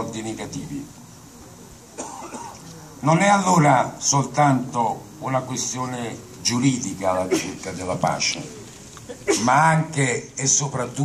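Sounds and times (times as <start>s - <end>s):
person coughing: 2.0s - 2.6s, 7.3s - 7.7s, 9.1s - 9.6s.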